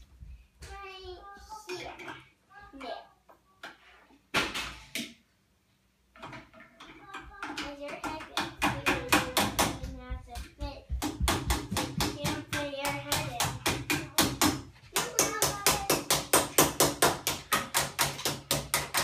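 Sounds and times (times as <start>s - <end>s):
child's voice: 0.6s - 3.7s, 6.8s - 11.0s, 11.8s - 16.4s
rapid tapping on wood: 7.1s - 19.0s.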